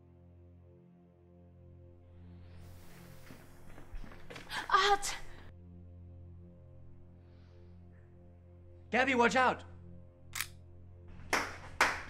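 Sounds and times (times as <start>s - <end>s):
man clapping hands: 11.2s - 12.0s.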